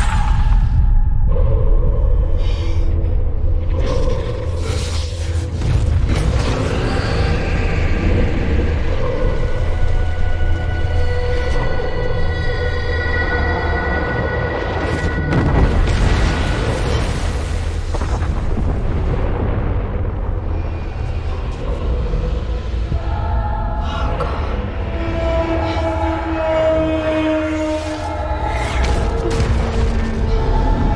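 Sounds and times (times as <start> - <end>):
dark dramatic score: 0.0 - 30.9
deep rumble of explosions: 13.8 - 25.4, 28.2 - 30.9.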